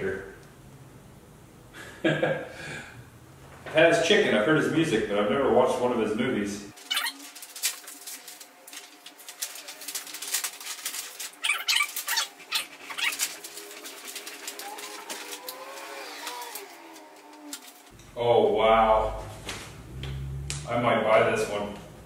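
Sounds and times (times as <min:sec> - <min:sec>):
faint steady hum: 0:00.0 - 0:11.3
stiff paper rustling: 0:06.7 - 0:18.0.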